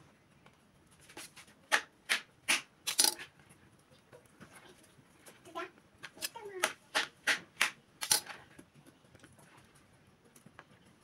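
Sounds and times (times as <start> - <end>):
kitchen utensils clicking: 2.9 - 3.2, 8.0 - 8.3.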